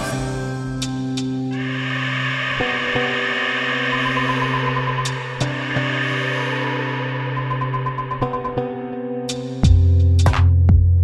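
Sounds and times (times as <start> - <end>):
sustained drone of held tones: 1.4 - 9.2
higher note: 1.5 - 8.9
sharp hit: 1.6 - 8.3.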